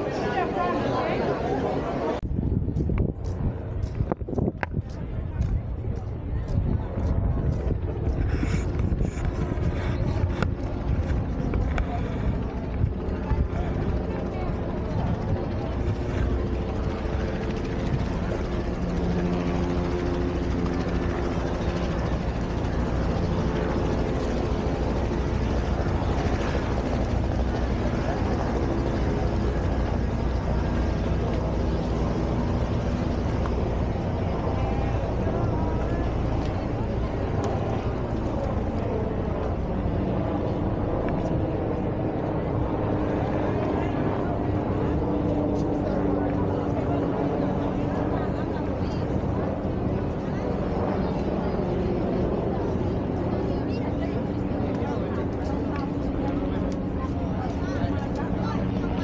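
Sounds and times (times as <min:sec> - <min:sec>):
people's voices: 0:00.0 - 0:59.0
wind rumbling on microphone: 0:01.9 - 0:59.0.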